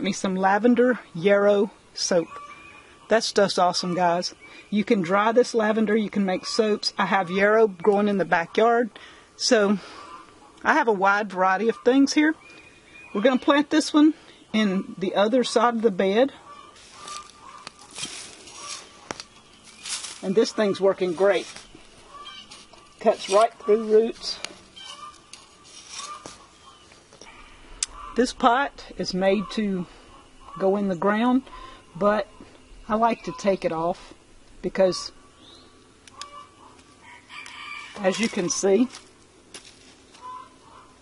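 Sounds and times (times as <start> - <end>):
faint bird chirp: 1.0 - 5.0, 11.6 - 38.9, 40.1 - 41.0
trowel scraping soil: 16.8 - 21.7, 22.3 - 26.4
sharp clicks: 36.0 - 36.3.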